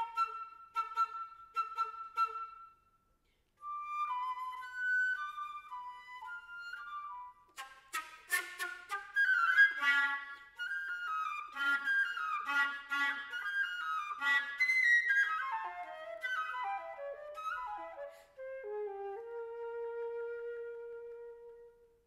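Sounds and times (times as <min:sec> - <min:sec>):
solo flute playing: 0:00.0 - 0:22.0.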